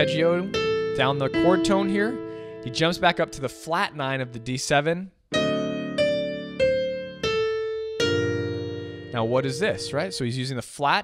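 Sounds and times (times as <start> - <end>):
piano playing: 0.0 - 4.7, 5.3 - 10.6.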